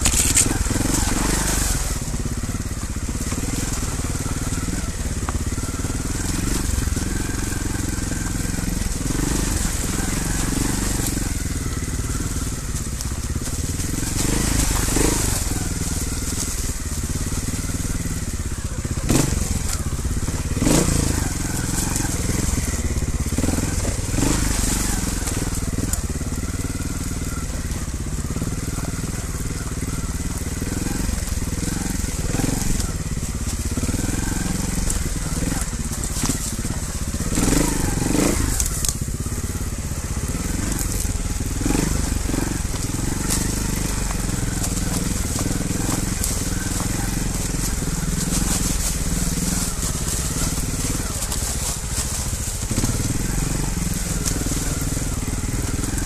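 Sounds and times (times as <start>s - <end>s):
motorcycle engine running: 0.0s - 56.0s
stones crunching under tyres: 0.0s - 56.0s.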